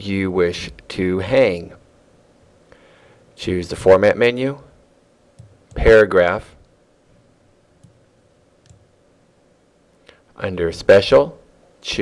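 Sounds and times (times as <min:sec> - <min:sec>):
faint computer mouse clicks: 0:07.8 - 0:08.0, 0:08.6 - 0:08.8.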